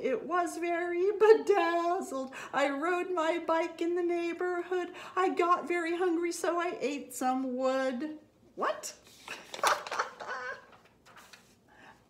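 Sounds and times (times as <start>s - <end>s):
woman laughing: 9.6s - 10.8s.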